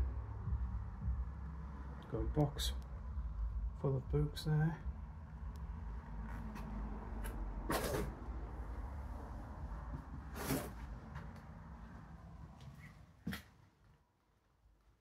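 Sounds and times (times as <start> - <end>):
low steady rumble: 0.0 - 12.6.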